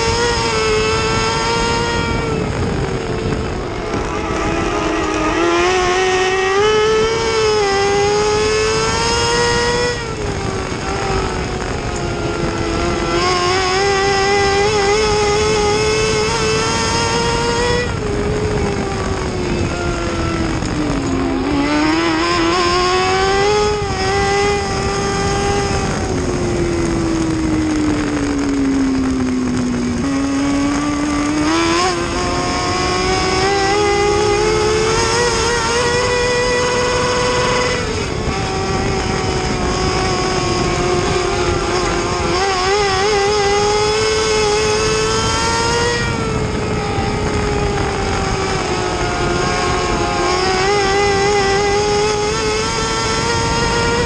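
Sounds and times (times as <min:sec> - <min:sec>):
race car engine running hard: 0:00.0 - 0:54.0.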